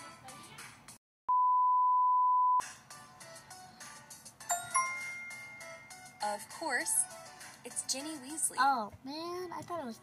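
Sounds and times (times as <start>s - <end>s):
quiet background music: 2.6s - 10.0s.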